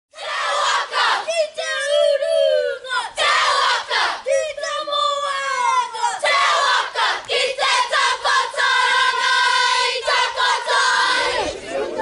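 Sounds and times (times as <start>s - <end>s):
group chanting in unison: 0.1s - 1.3s, 2.6s - 4.3s, 5.8s - 11.8s
group shouting phrases: 0.2s - 12.0s.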